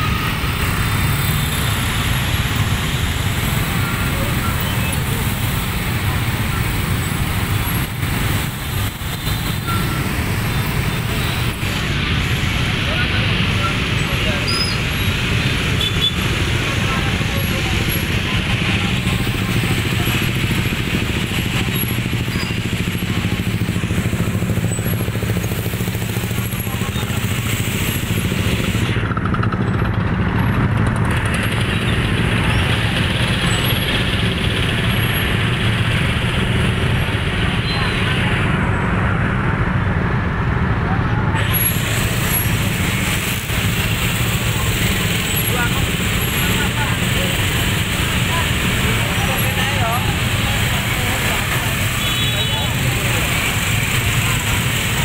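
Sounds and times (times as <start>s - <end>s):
crowd voices: 0.0s - 55.0s
motor scooter engines droning: 0.0s - 55.0s.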